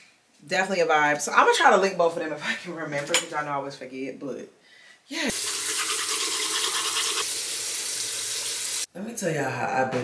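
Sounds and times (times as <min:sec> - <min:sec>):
toothbrush scrubbing teeth: 0:05.3 - 0:07.3.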